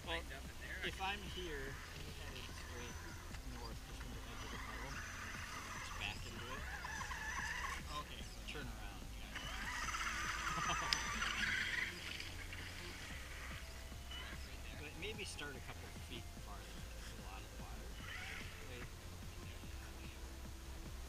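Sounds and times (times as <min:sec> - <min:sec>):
toy truck motor whining: 0:01.2 - 0:08.3, 0:09.2 - 0:14.8, 0:17.9 - 0:18.8.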